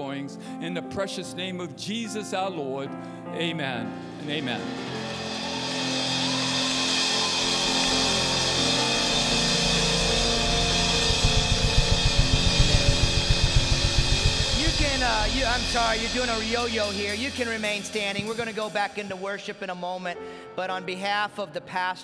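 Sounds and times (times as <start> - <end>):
worship band chords: 0.0 - 20.9
congregation applauding and cheering: 5.0 - 11.1
fast drum beat: 5.1 - 19.5.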